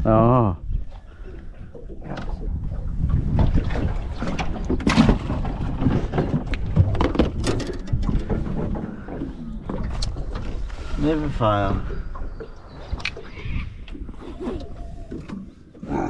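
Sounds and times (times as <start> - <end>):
fishing gear knocking and rustling: 3.3 - 10.7.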